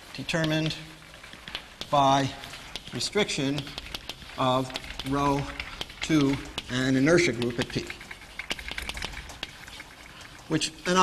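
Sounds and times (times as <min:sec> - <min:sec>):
chalk writing on blackboard: 0:01.5 - 0:07.9.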